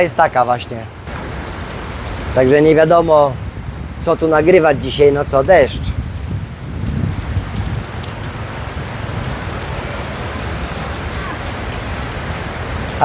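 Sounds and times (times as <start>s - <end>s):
steady rain on street and cars: 0.0s - 13.0s.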